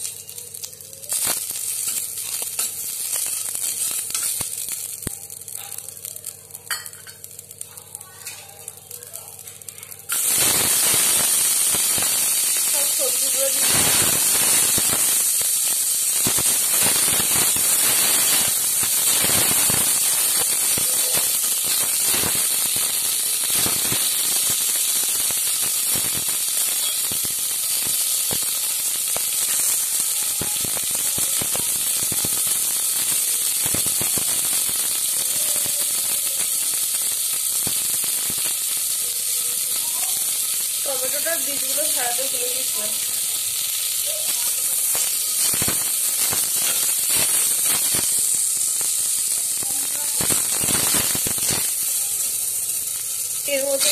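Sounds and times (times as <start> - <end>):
vegetables sizzling in oil: 0.0 - 53.9.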